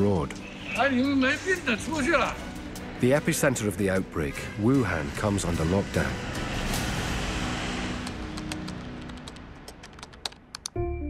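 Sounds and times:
low music drone: 0:00.0 - 0:11.0
computer keyboard typing clicks: 0:08.3 - 0:10.8.

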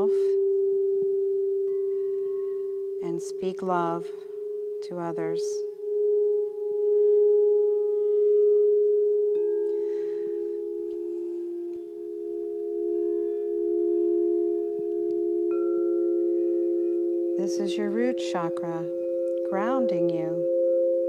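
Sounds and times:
crystal singing bowls: 0:00.0 - 0:21.0.

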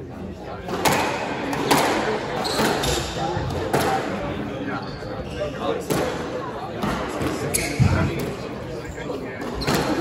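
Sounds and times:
shoe squeaks on wooden floor: 0:07.4 - 0:08.2.

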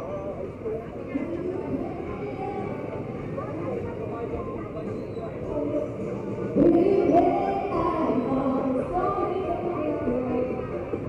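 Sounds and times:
indistinct voices: 0:00.0 - 0:11.0
steady traffic noise: 0:00.0 - 0:11.0.

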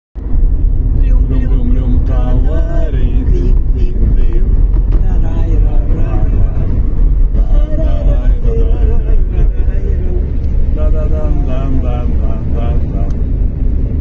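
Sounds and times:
car road rumble from inside: 0:00.2 - 0:14.0.

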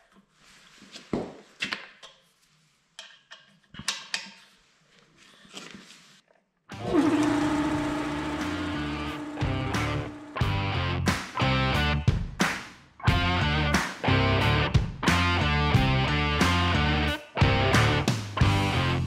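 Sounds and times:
loud rock music with electric guitar: 0:08.5 - 0:12.0, 0:13.1 - 0:19.0.

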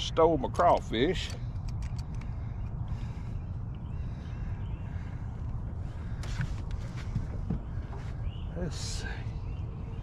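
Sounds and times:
low outdoor rumble: 0:00.0 - 0:10.0
clatter of clicks: 0:00.6 - 0:02.4
faint bird chirps: 0:01.9 - 0:10.0.

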